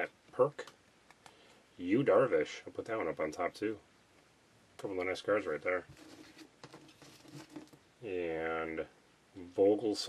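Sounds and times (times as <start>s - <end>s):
trading cards rustling and clicking: 5.9s - 7.8s.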